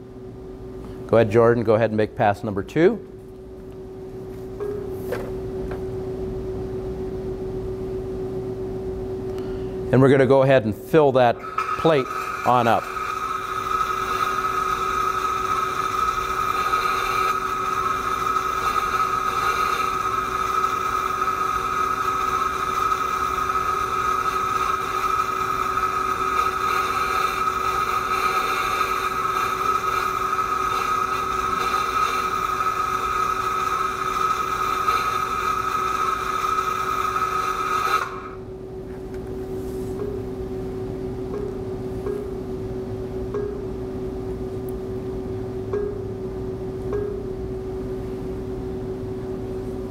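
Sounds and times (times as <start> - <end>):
faint hum: 0.0 - 49.9
welding hiss with whine: 10.2 - 38.5.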